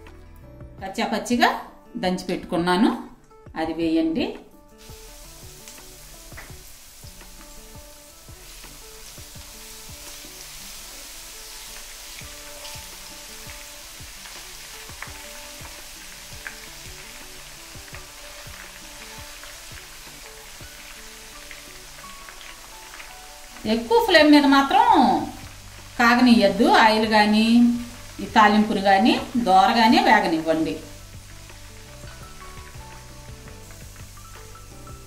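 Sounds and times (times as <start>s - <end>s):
oil sizzling in a frying pan: 4.7s - 35.0s.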